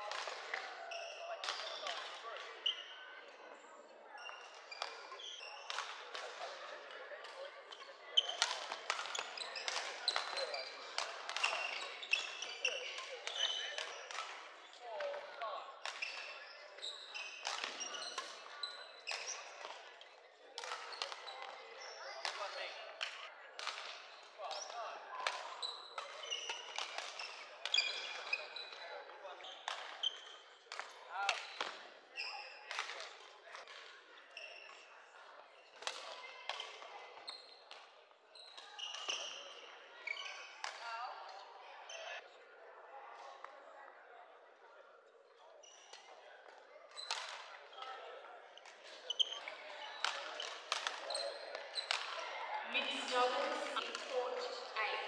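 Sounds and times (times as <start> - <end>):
murmur of voices: 0.0 - 55.0
shoes squeaking on floor: 11.4 - 14.2, 25.6 - 28.8, 37.2 - 37.6, 46.9 - 48.0, 48.6 - 55.0
racket hitting shuttlecock: 50.0 - 51.1.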